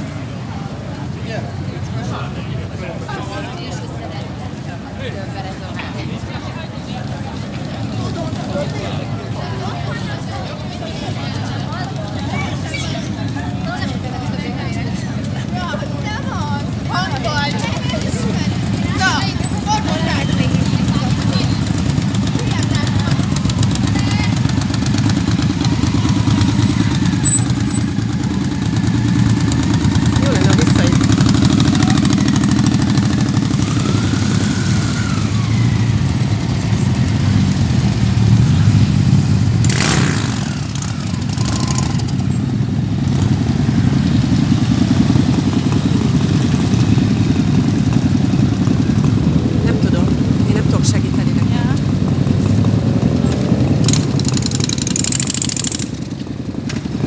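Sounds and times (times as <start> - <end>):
motorcycle engines rumbling: 0.0 - 57.0.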